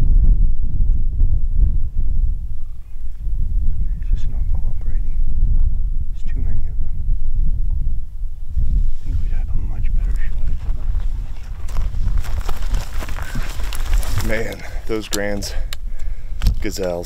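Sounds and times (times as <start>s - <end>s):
wind buffeting microphone: 0.0s - 17.0s
short crackles: 10.0s - 15.8s.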